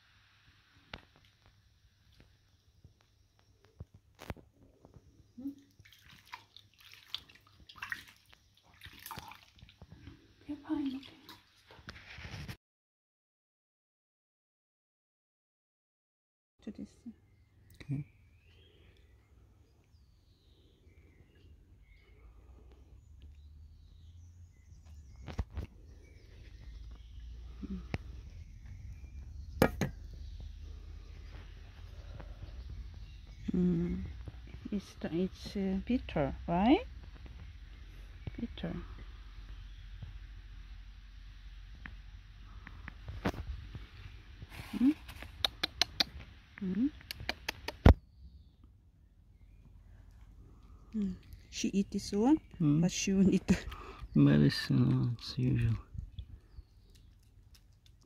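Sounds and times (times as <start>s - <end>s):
water splashing in basin: 5.6s - 11.7s.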